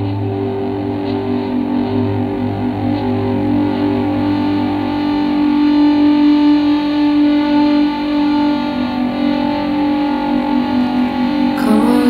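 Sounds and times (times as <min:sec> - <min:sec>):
electric guitar ringing chords: 0:00.0 - 0:12.0
low sustained note: 0:00.0 - 0:12.0.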